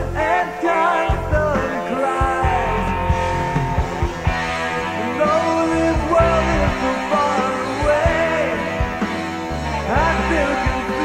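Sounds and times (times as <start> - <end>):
rock band instrumental: 0.0 - 11.0.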